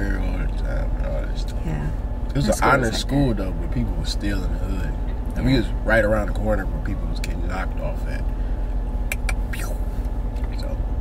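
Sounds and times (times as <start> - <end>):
car idling rumble: 0.0 - 11.0.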